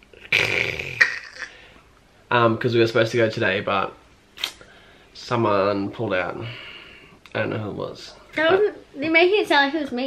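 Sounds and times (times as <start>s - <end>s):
breathy vocal noise: 0.1s - 1.8s.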